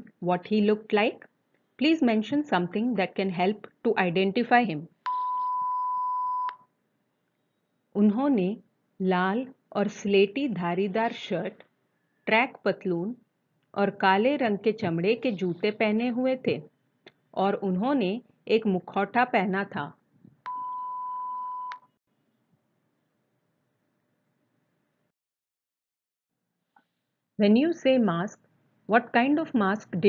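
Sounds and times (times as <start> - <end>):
steady electronic beep: 5.1 - 6.6, 20.5 - 21.9.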